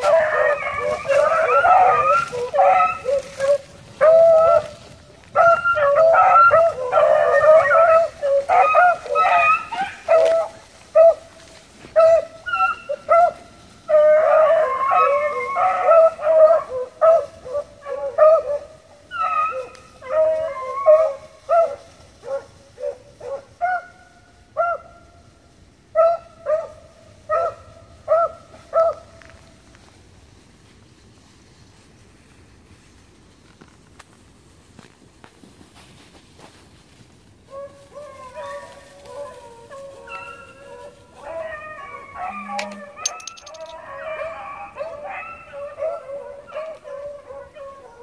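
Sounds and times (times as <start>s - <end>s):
hounds baying: 0.0s - 24.0s, 37.5s - 48.0s.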